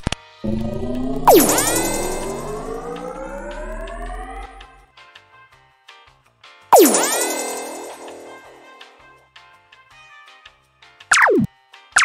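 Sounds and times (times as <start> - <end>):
cartoon laser beam whine: 0.4 - 4.8, 6.8 - 8.7.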